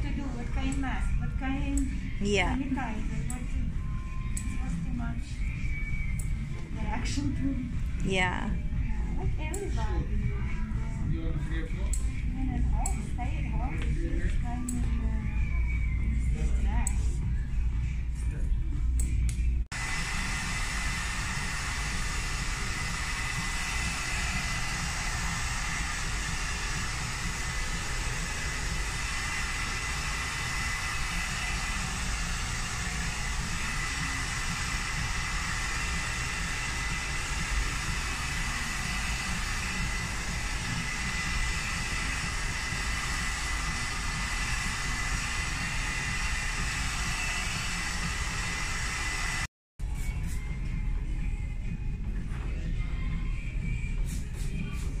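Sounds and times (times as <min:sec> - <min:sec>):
hair dryer running: 0:19.7 - 0:49.5.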